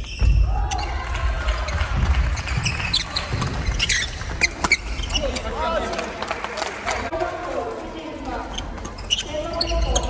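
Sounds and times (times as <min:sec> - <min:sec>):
players' voices: 0:00.4 - 0:10.0
shoes squeaking on wooden floor: 0:02.3 - 0:05.8, 0:08.4 - 0:10.0.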